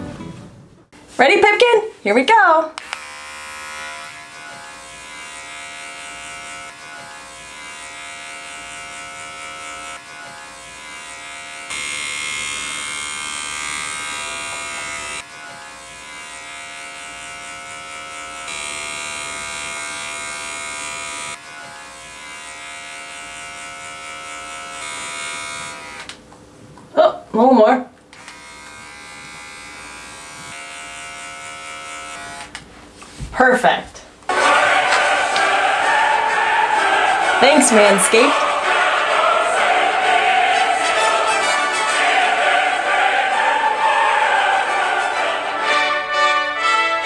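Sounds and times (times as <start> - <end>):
electric trimmer motor hum: 2.8 - 26.2, 28.1 - 32.6.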